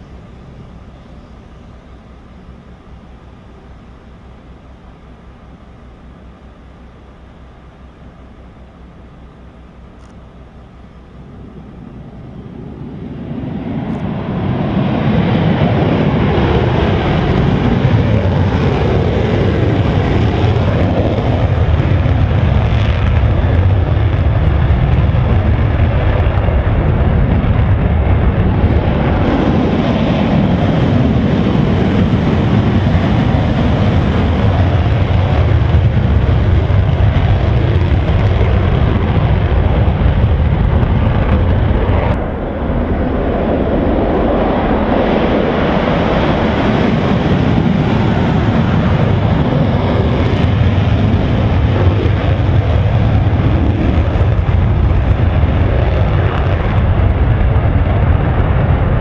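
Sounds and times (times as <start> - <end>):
jet engine at high power: 0.0 - 59.0.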